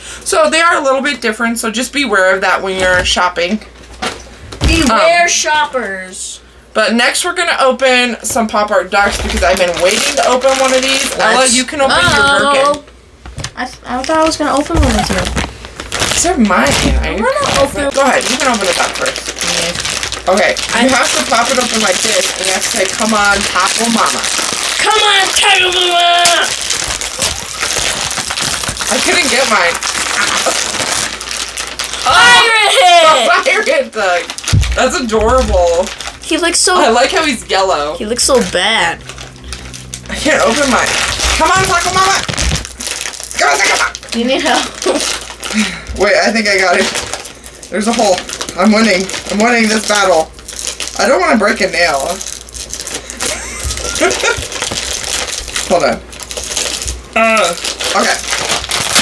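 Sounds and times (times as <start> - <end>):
plastic packets crinkling: 7.2 - 59.0
person talking: 8.7 - 12.9, 13.8 - 15.4, 32.0 - 39.1, 40.1 - 42.3
packets torn open: 14.0 - 36.5, 39.0 - 59.0.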